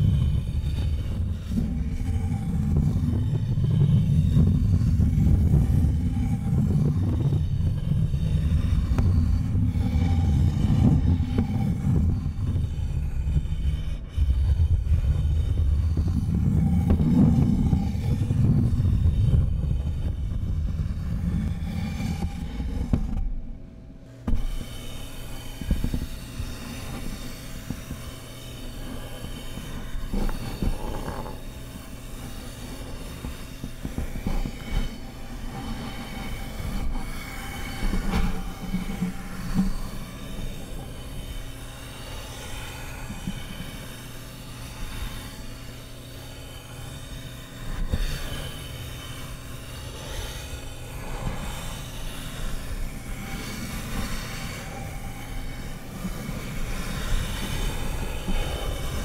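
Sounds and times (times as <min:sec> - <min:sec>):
low hum: 0:00.0 - 0:59.0.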